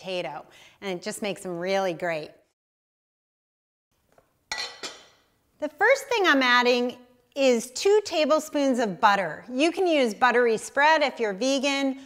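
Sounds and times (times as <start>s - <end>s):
glass lid clinking on counter: 4.5s - 5.2s.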